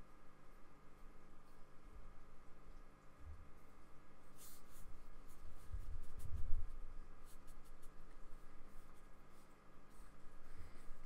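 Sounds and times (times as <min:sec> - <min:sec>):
paintbrush brushing on paper: 0:03.5 - 0:11.0.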